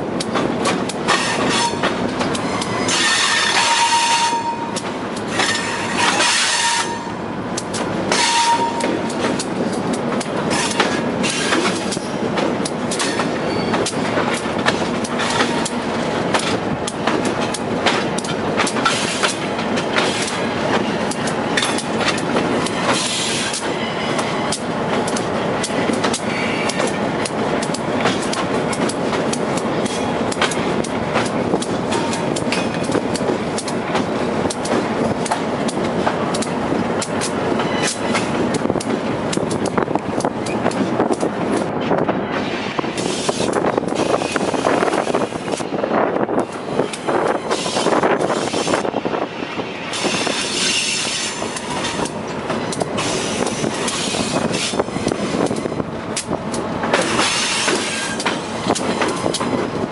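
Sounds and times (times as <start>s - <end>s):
locomotive running rumble: 0.0s - 59.9s
wheel clicks over rail joints: 7.6s - 42.0s, 51.4s - 59.9s.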